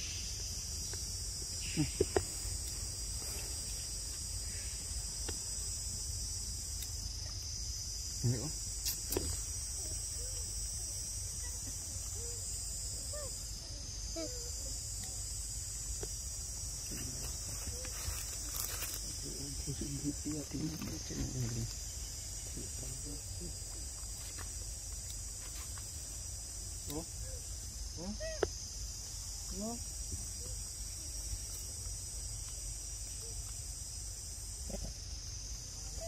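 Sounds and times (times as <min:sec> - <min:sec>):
insects droning: 0:00.0 - 0:36.0.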